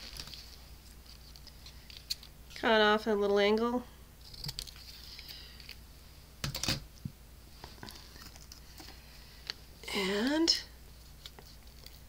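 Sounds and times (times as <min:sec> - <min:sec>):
paper and tools handled: 0:00.0 - 0:02.3, 0:11.0 - 0:12.0.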